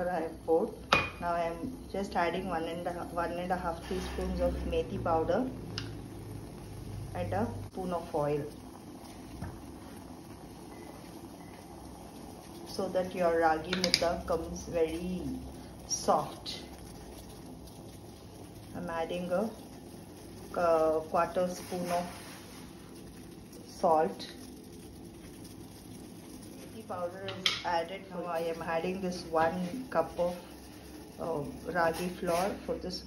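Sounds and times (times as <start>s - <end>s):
water boiling in pot: 0.0s - 33.0s.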